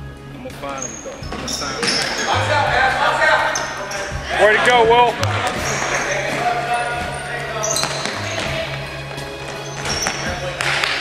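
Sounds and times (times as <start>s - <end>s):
spectators talking: 0.5s - 11.0s.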